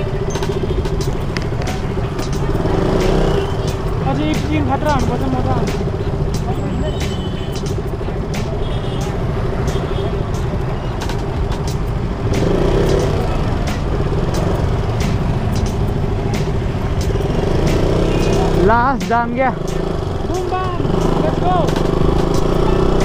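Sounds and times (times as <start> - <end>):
motorcycle engine running: 0.0 - 23.0.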